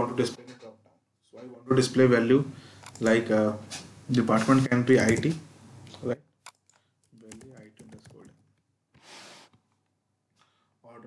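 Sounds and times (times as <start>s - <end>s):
typing on computer keyboard: 6.5s - 8.4s.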